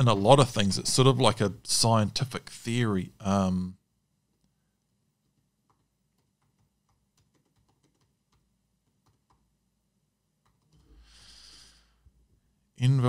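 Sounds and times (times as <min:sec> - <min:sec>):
person breathing: 0:10.8 - 0:12.2.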